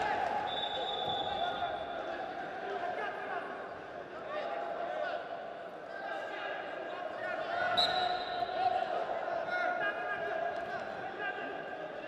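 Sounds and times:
shrill whistle blast: 0.4 - 1.9, 7.8 - 8.5.

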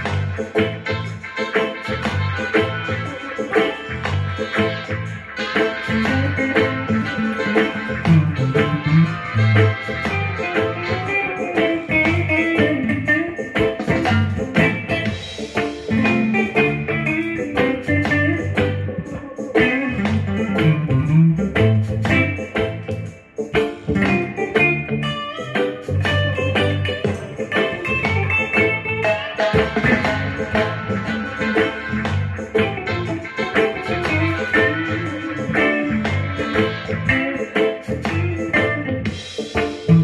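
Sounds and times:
electric guitar lead lines: 0.0 - 40.0
low repeating bass line: 0.0 - 40.0.

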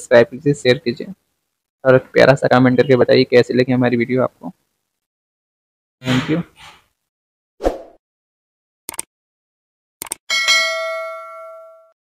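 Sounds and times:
quick clicks: 8.9 - 9.1, 10.0 - 10.2
notification bell ding: 10.3 - 12.0.

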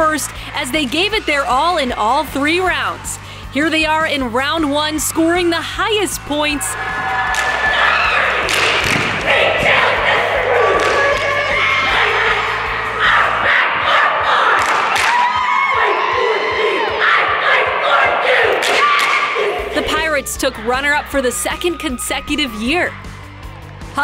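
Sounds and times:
girls chanting a cheer: 0.0 - 22.3
background music: 0.0 - 24.0.

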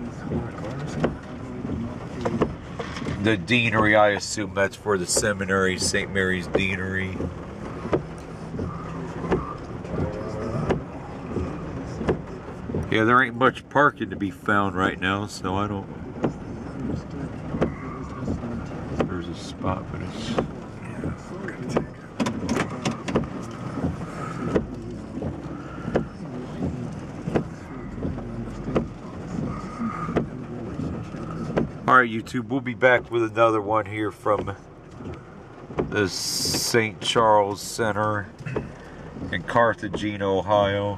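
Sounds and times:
car engine and road hum: 0.0 - 40.9.

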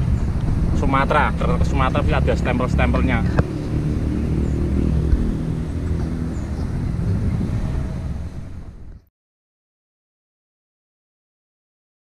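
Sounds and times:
wind on microphone: 0.0 - 9.1.

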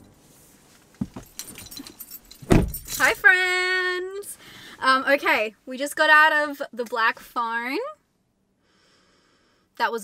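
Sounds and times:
dull thump: 1.0 - 1.4, 2.4 - 3.0
keys jangling: 1.0 - 3.2.

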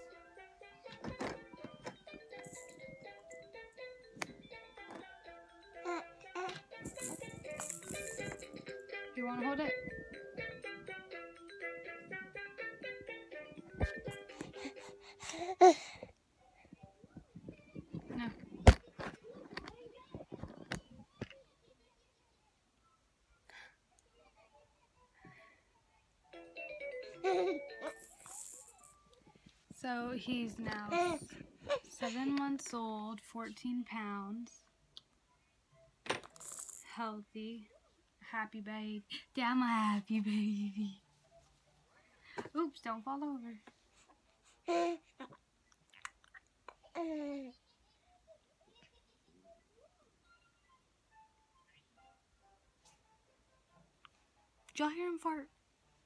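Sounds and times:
high toy rattle: 2.3 - 2.9, 6.8 - 8.6, 27.8 - 29.0, 36.3 - 36.9.

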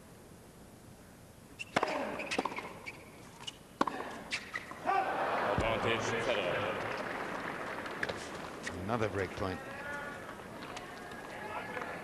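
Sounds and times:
tennis ball bouncing on court: 1.6 - 4.7
crowd chatter: 5.1 - 12.0.

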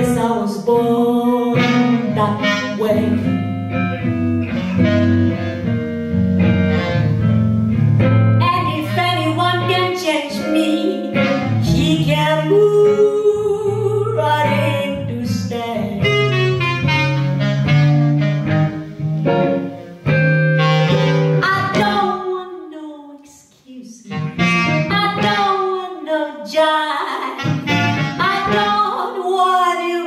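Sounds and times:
woman singing: 0.0 - 3.6, 8.4 - 16.4, 21.4 - 27.6, 28.2 - 30.0
clarinet solo: 0.0 - 22.4, 24.1 - 26.0, 26.8 - 30.0
electric guitar accompaniment: 0.0 - 22.7, 24.1 - 30.0.

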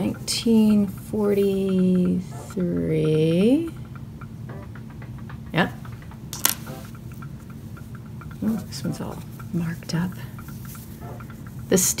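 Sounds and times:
coin clicking against coins: 6.4 - 6.8.

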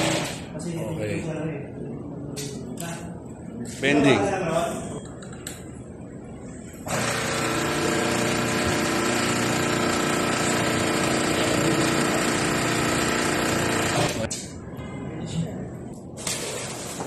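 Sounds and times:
electric hydraulic pump running: 6.9 - 14.2.

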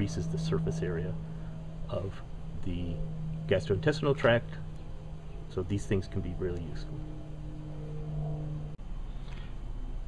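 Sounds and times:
low hum with held tones: 0.0 - 10.0.

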